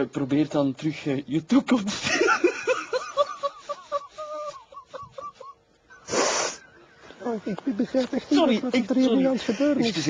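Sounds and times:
man laughing wheezily: 2.1s - 6.9s.

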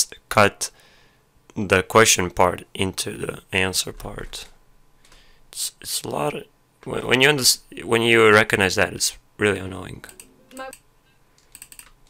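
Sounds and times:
keyboard or mouse clicks: 11.4s - 12.0s.

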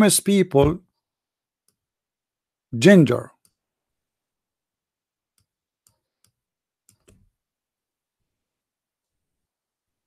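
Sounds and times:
keyboard and mouse clicks: 5.3s - 7.4s.

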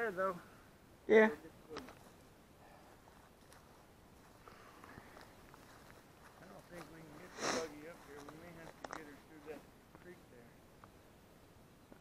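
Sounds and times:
person sniffing: 7.3s - 7.8s.

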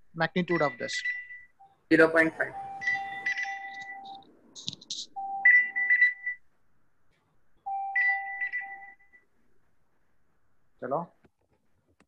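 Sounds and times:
electronic beeping jingle: 0.4s - 4.3s, 5.1s - 6.4s, 7.7s - 9.2s.

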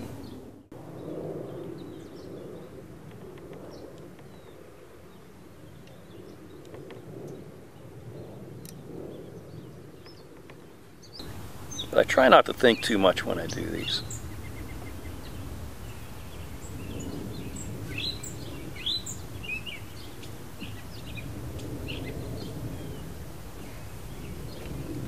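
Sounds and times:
faint bird chirps: 12.7s - 24.9s.

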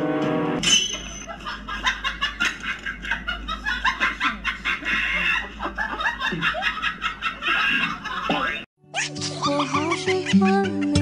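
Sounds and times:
people giggling: 1.0s - 11.0s.

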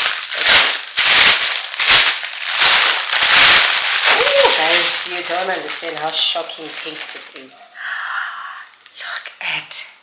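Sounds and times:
plastic bag crinkling: 0.0s - 7.9s.

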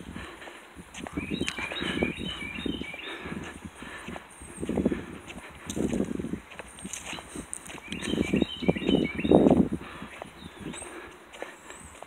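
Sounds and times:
footsteps on asphalt: 0.0s - 12.0s
small bird chirping: 1.0s - 3.3s, 6.6s - 10.9s.

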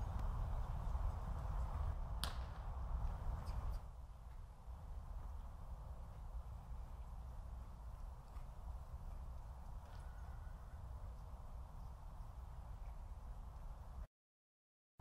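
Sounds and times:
low steady rumble: 0.0s - 14.0s
sharp crack: 2.1s - 3.6s.

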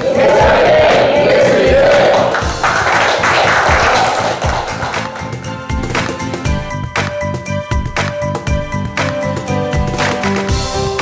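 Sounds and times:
small group clapping: 0.0s - 7.3s, 8.0s - 10.6s
music with low beat: 0.0s - 11.0s.

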